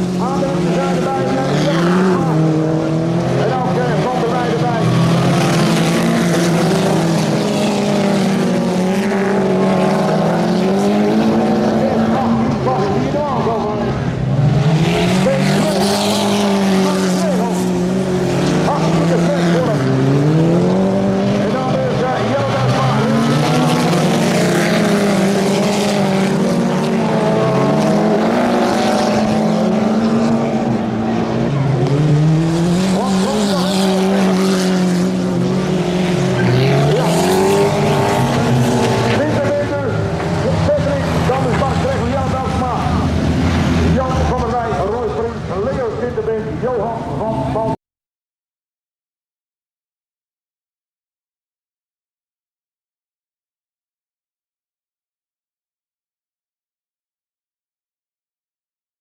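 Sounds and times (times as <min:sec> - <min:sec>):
race car engines revving: 0:00.0 - 0:47.8.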